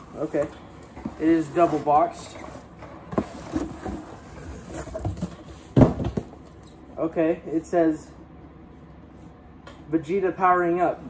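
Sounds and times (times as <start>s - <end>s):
cardboard boxes scraping and rustling: 0.0s - 6.3s
box thumping down: 4.8s - 6.4s.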